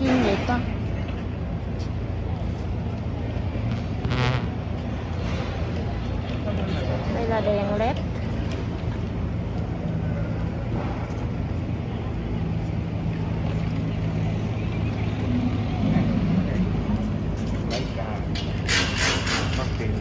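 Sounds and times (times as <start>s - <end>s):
engines droning: 0.0s - 20.0s
murmur of voices: 0.0s - 20.0s.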